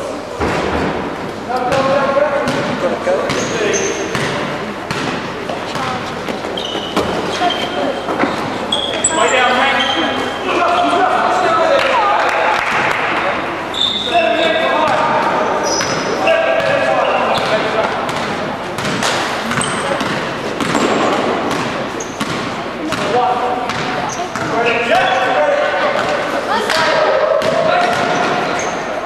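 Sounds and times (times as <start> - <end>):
players' indistinct calls: 1.3 - 29.0
basketball bouncing on court: 1.7 - 6.0, 14.8 - 25.1, 26.0 - 28.6
sneakers squeaking on floor: 2.5 - 11.1, 13.4 - 25.4, 27.4 - 29.0.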